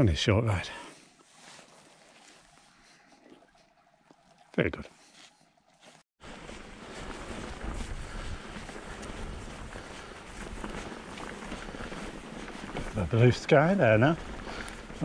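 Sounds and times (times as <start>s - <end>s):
bike tyres rolling on grass: 1.2s - 2.7s, 5.8s - 15.0s
bike rattling: 6.2s - 15.0s
wind buffeting microphone: 6.4s - 15.0s.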